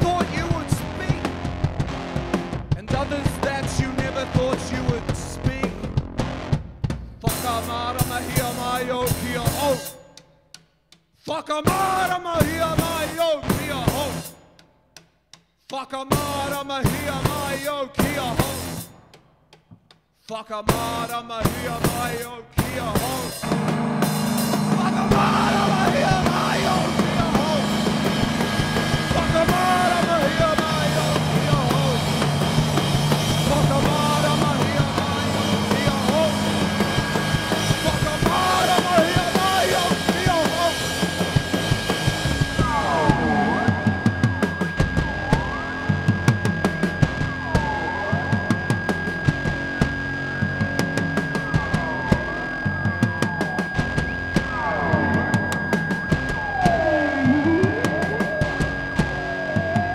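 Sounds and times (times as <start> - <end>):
drum kit playing: 0.0 - 20.1, 20.7 - 59.9
steady high tone: 23.0 - 59.9
sweeping electric guitar noise: 23.4 - 59.9.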